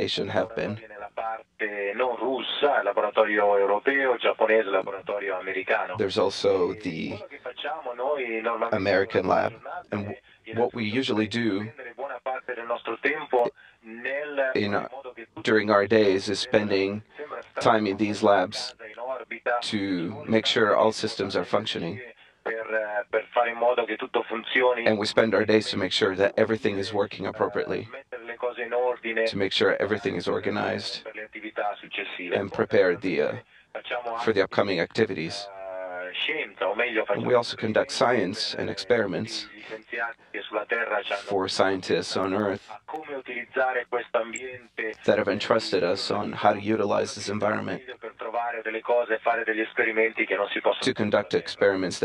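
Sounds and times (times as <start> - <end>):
person talking over telephone line: 0.0 - 52.0.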